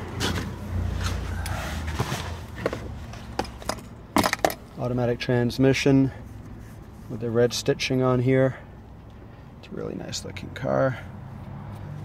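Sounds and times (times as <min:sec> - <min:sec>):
rustling and handling noise: 0:00.1 - 0:04.8.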